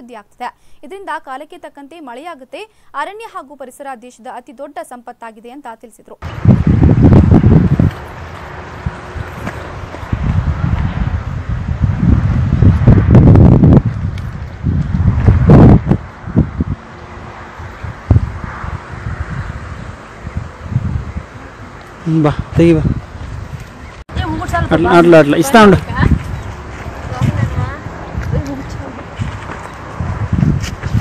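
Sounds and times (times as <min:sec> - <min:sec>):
wind buffeting microphone: 0:06.2 - 0:31.0.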